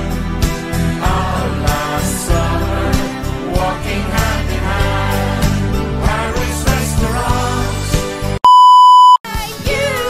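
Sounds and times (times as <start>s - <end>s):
steady electronic beep: 8.4s - 9.2s.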